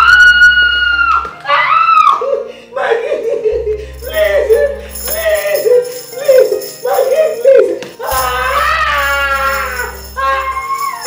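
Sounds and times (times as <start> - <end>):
woman screaming and wailing: 0.0 - 11.0
music with jingling percussion: 3.2 - 11.0.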